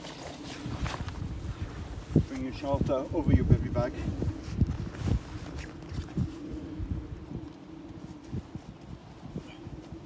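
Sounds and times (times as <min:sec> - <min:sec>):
poncho rustling and flapping: 0:00.0 - 0:10.0
wind rumbling on microphone: 0:00.0 - 0:10.0.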